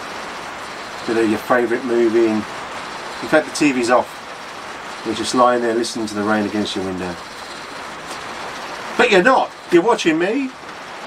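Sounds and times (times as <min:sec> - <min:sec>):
heavy rain hissing: 0:00.0 - 0:11.0.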